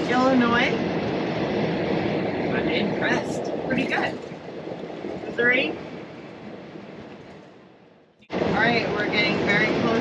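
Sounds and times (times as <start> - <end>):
road and engine noise in a vehicle: 0.0 - 10.0.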